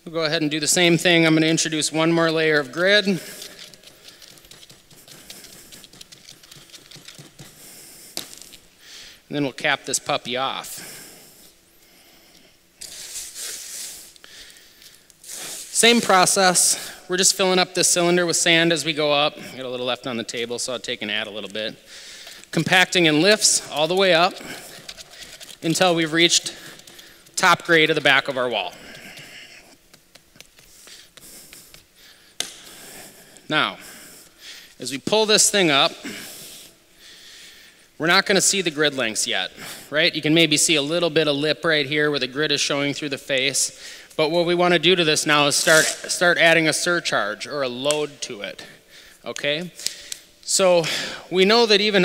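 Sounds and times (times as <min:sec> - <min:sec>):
hand tool tapping damp sand: 0:03.8 - 0:07.6.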